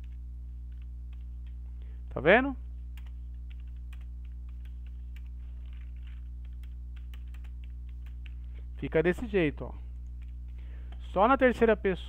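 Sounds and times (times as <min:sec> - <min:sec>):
keyboard typing: 0:00.0 - 0:01.7, 0:02.9 - 0:08.6, 0:10.0 - 0:11.0
low electrical hum: 0:00.0 - 0:12.0.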